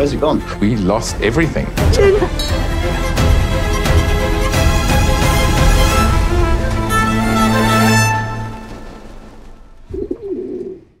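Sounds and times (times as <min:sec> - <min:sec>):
string music: 0:00.0 - 0:09.9
pigeon cooing: 0:09.9 - 0:11.0.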